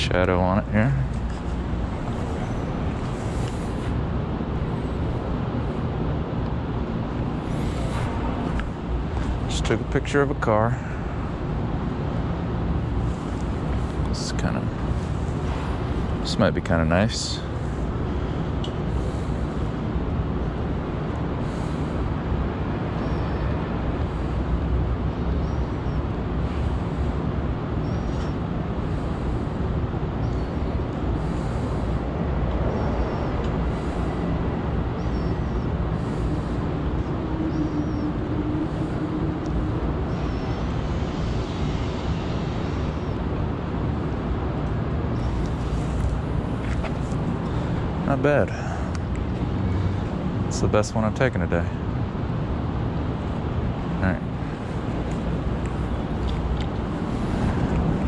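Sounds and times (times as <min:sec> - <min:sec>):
low rumble of traffic: 0:00.0 - 0:58.0
faint high chirps: 0:35.0 - 0:35.7.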